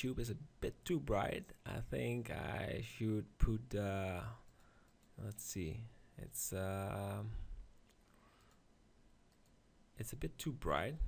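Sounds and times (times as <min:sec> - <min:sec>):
computer mouse clicks: 0:09.3 - 0:09.6.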